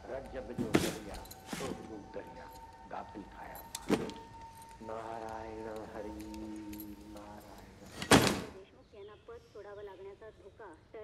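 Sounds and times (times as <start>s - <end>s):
faint man's voice: 0.0s - 8.2s
door slamming shut: 8.0s - 8.6s.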